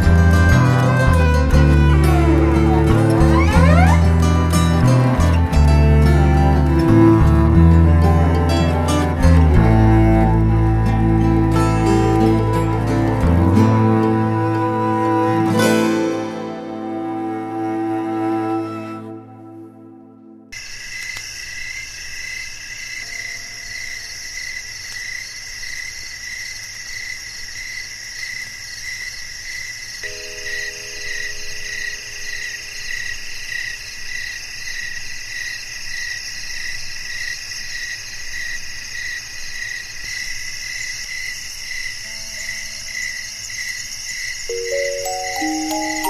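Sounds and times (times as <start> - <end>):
crickets chirping: 20.5 - 46.0
faint music-box notes: 44.5 - 46.0.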